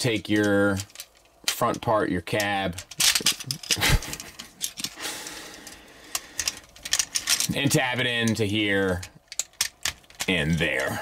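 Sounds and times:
plastic toy parts clicking: 0.0s - 11.0s.

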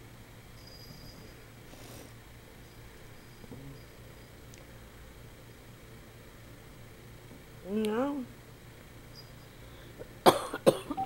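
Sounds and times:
person coughing: 10.2s - 11.0s.

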